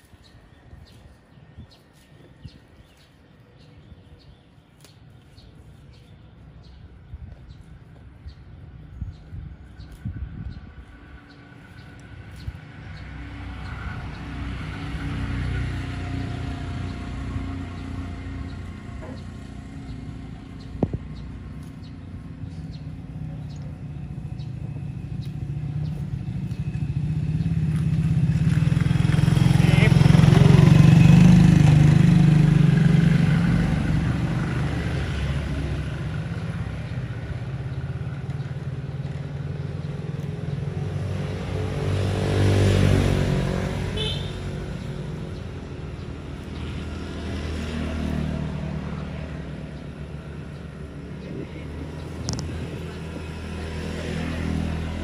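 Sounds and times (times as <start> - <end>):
another vehicle approaching: 0.0 - 55.0
vehicle engine passing: 6.6 - 55.0.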